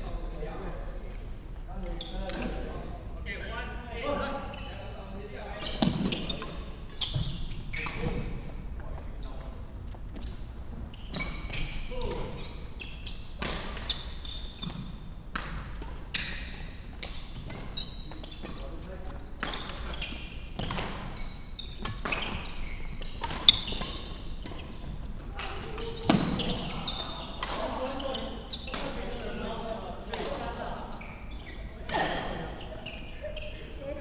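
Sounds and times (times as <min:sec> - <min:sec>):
shoes squeaking on wooden floor: 0:04.5 - 0:15.0, 0:17.2 - 0:28.7, 0:30.2 - 0:33.9
rackets hitting shuttlecock: 0:21.8 - 0:24.7.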